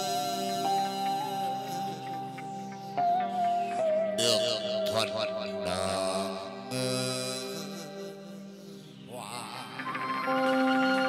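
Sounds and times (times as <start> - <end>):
chant-like held sung note: 0.0 - 11.0.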